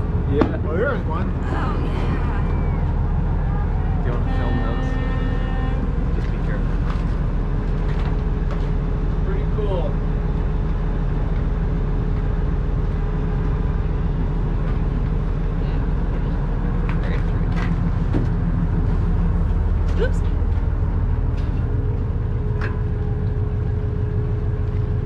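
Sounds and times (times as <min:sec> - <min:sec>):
boat engine droning: 0:00.0 - 0:25.0
faint voices: 0:00.5 - 0:06.9.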